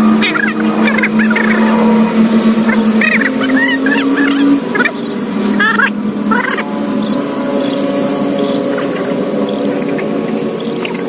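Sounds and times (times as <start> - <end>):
high wavering chirps: 0.0 - 11.0
motor humming: 0.0 - 11.0.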